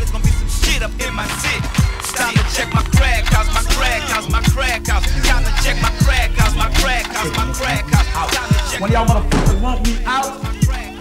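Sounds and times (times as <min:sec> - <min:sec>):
hi-hats: 0:00.0 - 0:11.0
rapping over a beat: 0:00.0 - 0:11.0
deep kick drums: 0:07.9 - 0:10.0.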